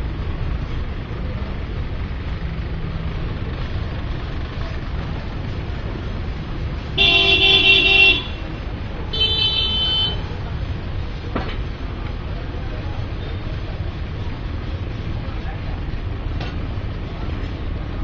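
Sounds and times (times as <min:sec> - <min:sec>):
street traffic rumble: 0:00.0 - 0:18.0
vehicle horn honking: 0:07.0 - 0:10.3.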